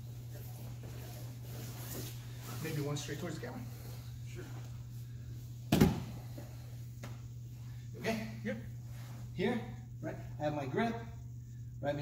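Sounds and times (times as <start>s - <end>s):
steady low hum: 0.0s - 12.0s
body thudding onto foam mat: 5.7s - 6.2s.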